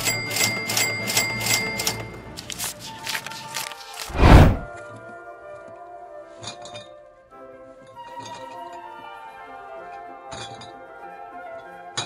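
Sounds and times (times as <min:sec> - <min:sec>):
background music: 0:04.8 - 0:12.0.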